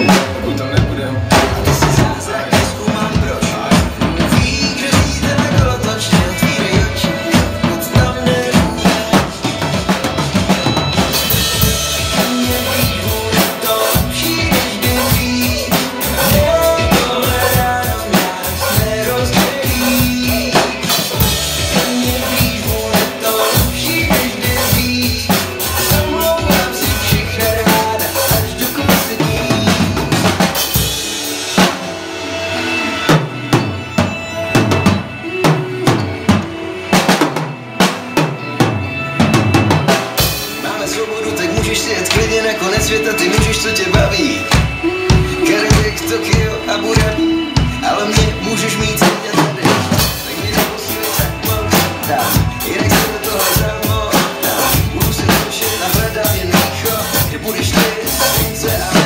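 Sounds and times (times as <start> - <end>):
drum kit beat with cymbals: 0.0 - 59.0
pop-rock backing track: 0.0 - 59.0.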